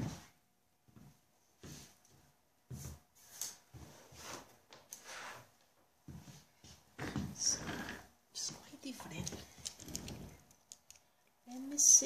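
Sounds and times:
person whispering: 7.2 - 10.1.

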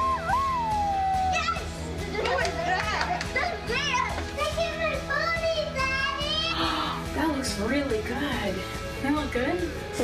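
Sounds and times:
background music: 0.0 - 10.0
children's excited voices and squeals: 0.2 - 2.2, 3.4 - 7.0.

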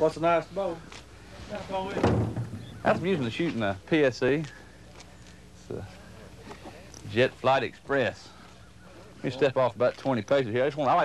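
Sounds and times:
men talking: 0.0 - 4.9, 5.6 - 6.1, 7.0 - 11.0.

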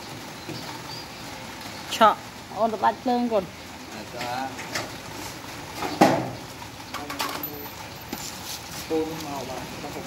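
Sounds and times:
hand tool clattering on metal: 6.9 - 7.8.

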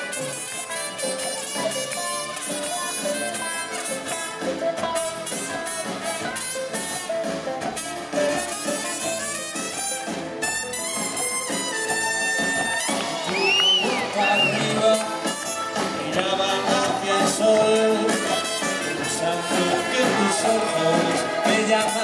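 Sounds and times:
drums: 0.0 - 22.0
electric guitar: 0.0 - 22.0
trumpets playing melody: 0.0 - 22.0
upright bass: 0.0 - 22.0.

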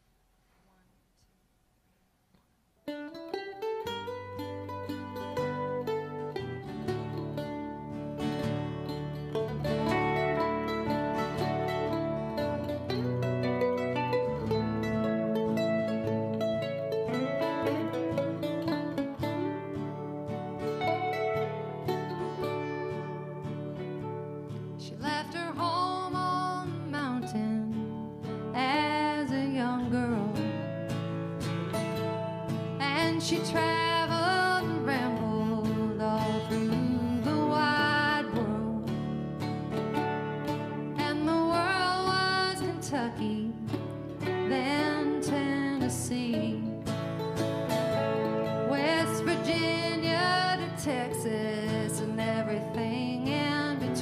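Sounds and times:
country band playing live: 4.4 - 25.0, 29.2 - 54.0
woman singing: 24.8 - 30.8, 32.7 - 39.1, 40.9 - 46.9, 48.5 - 54.0.

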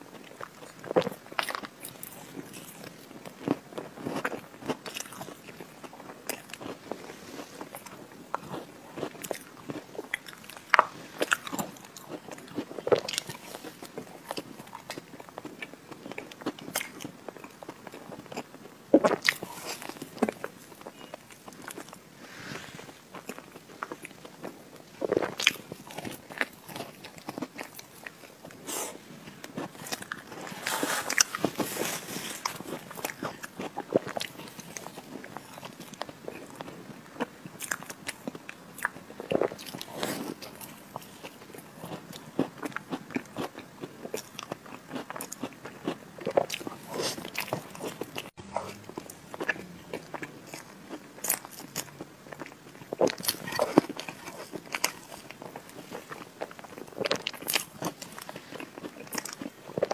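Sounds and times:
biting and chewing cake: 0.0 - 59.9.

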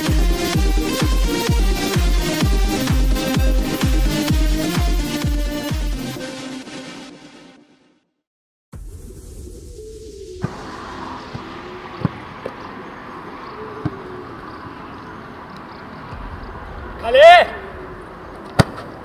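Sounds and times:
person shouting: 17.0 - 17.8.

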